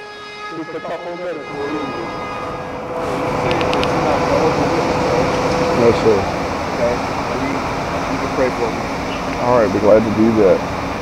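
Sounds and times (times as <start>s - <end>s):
bus engine whining: 0.0s - 11.0s.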